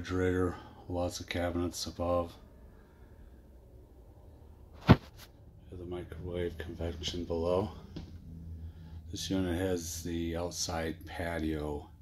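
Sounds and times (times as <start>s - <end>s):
sharp loud knock: 4.8s - 5.1s.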